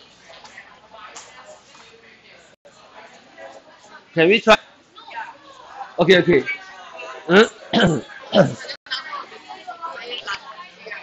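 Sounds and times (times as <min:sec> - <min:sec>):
person clearing throat: 0:07.7 - 0:08.7.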